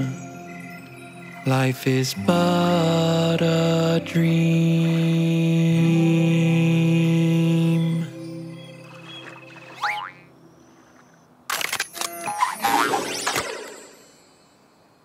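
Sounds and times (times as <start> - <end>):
wavering pitched sounds: 7.8 - 10.4
cartoon rising glide: 8.8 - 10.3
sharp clicks: 11.5 - 12.4.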